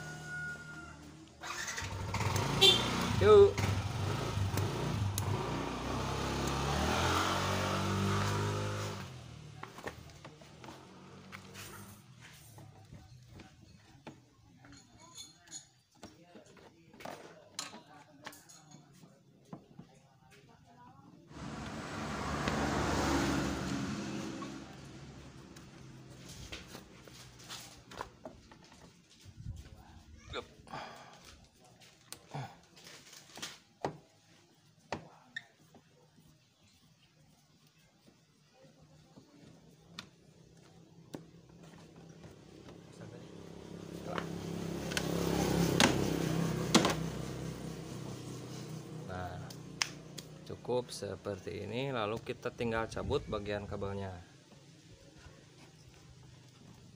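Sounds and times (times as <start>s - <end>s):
vehicle engine: 0.0s - 13.1s, 21.3s - 28.9s, 35.6s - 53.9s.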